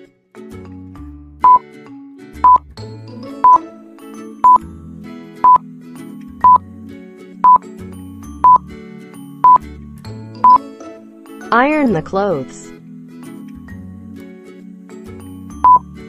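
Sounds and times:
light background music: 0:00.0 - 0:16.0
countdown timer beeping: 0:04.4 - 0:04.6, 0:08.4 - 0:08.6, 0:09.4 - 0:09.6, 0:10.4 - 0:10.6, 0:15.6 - 0:15.9.

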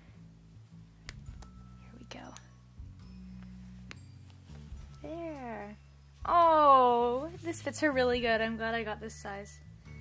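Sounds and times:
fabric rustling: 0:03.2 - 0:08.2.

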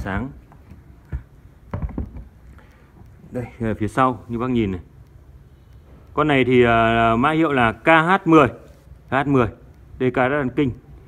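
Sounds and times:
knocks against wooden speaker cabinet: 0:01.1 - 0:02.3.

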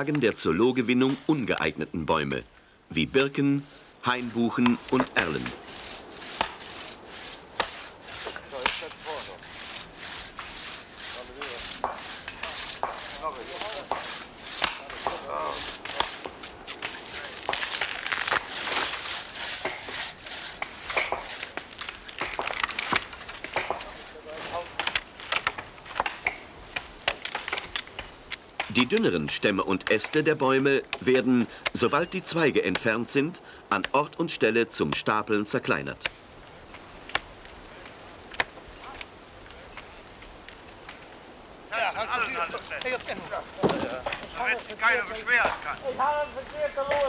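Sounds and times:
hand saw cutting wood: 0:03.6 - 0:28.1.

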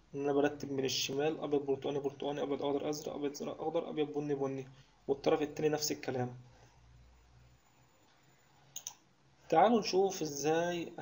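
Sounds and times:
computer mouse clicks: 0:08.1 - 0:09.0.

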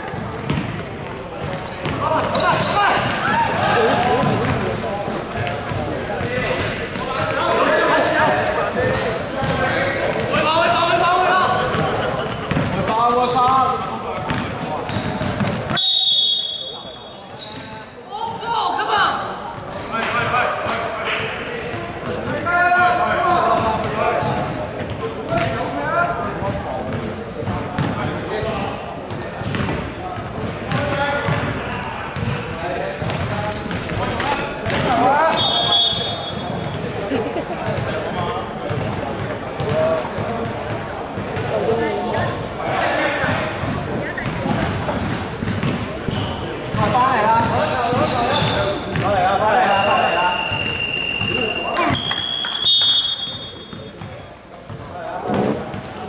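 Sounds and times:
ball bouncing on wooden court: 0:00.1 - 0:04.7, 0:11.7 - 0:12.9, 0:14.2 - 0:15.8, 0:26.4 - 0:28.0, 0:29.1 - 0:29.8, 0:32.2 - 0:32.4, 0:33.0 - 0:35.0, 0:43.3 - 0:49.1
players calling out: 0:00.2 - 0:19.8
referee whistle blasts: 0:15.7 - 0:17.1, 0:35.3 - 0:36.3, 0:49.6 - 0:53.7.

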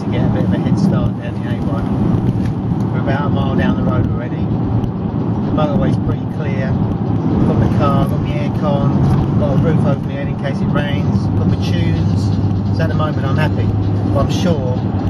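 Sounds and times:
car engine and road rumble: 0:00.0 - 0:15.0.

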